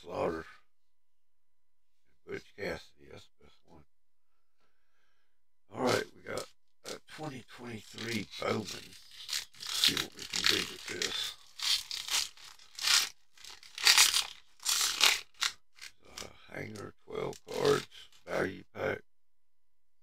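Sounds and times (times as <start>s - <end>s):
low voice murmuring: 5.7s - 8.9s, 9.6s - 11.4s, 16.0s - 19.0s
card pack wrapper crinkling: 7.7s - 16.3s, 17.2s - 18.2s.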